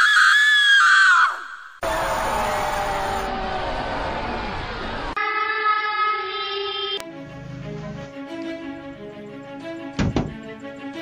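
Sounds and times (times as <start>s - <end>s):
high-pitched scream: 0.0s - 4.6s.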